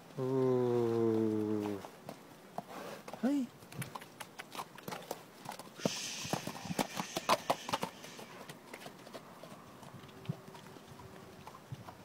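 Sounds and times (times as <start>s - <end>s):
horse hooves on muddy ground: 0.0s - 12.0s.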